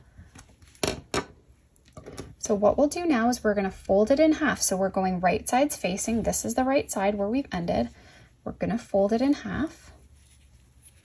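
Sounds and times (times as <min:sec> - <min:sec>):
handling crochet on tabletop: 0:09.9 - 0:11.0.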